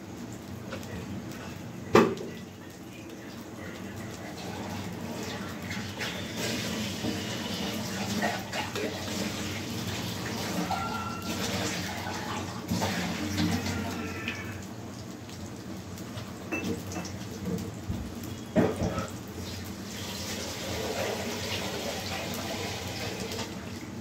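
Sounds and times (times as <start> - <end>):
egg sizzling in a frying pan: 0.0 - 24.0.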